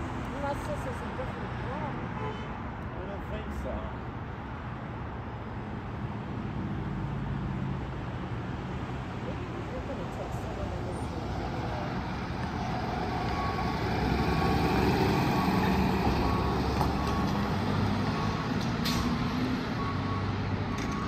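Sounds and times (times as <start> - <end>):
vehicle engine and tyres passing: 3.4 - 21.0.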